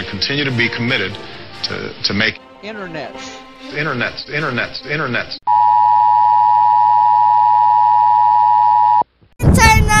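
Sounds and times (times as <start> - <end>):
child's loud voice: 9.4 - 10.0.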